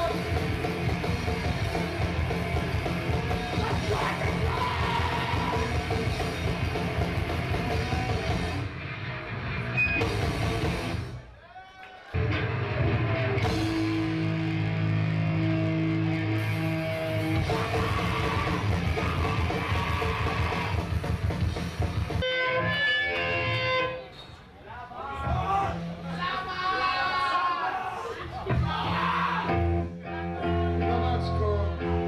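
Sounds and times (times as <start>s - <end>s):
hardcore band playing live: 0.0s - 11.2s, 12.2s - 24.0s
long held guitar notes: 22.2s - 24.0s.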